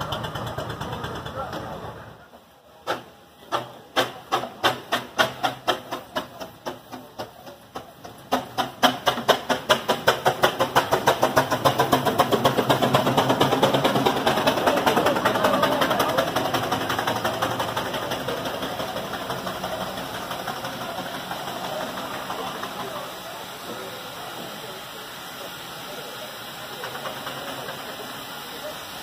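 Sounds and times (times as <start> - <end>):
steam engine exhaust chuffing: 0.0 - 29.0.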